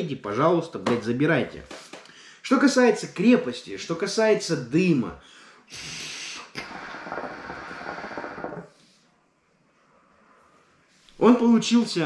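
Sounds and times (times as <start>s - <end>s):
air rushing through hookah hose: 5.7s - 8.8s
water bubbling in hookah base: 6.6s - 8.7s.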